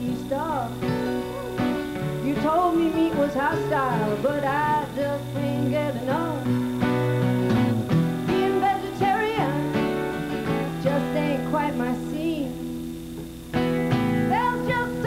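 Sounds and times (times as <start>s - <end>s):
woman singing: 0.0s - 1.0s, 2.2s - 6.7s, 8.2s - 12.8s, 14.0s - 15.0s
strummed acoustic guitar: 0.0s - 15.0s.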